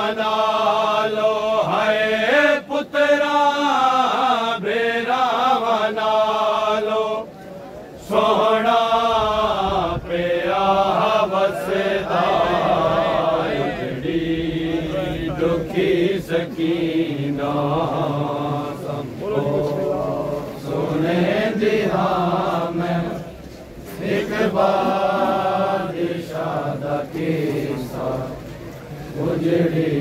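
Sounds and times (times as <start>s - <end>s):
men chanting a lament: 0.0s - 7.4s, 8.0s - 30.0s.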